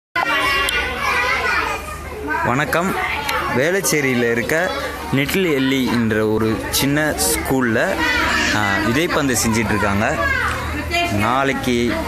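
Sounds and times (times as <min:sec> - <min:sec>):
young children chattering: 0:00.2 - 0:12.0.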